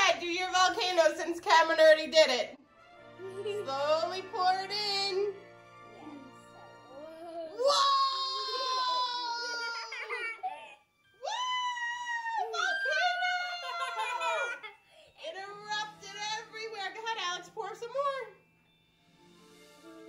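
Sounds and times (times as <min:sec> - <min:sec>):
faint background music: 0:00.0 - 0:20.0
young children squealing: 0:07.5 - 0:14.8
children giggling: 0:08.2 - 0:10.8, 0:12.6 - 0:14.9.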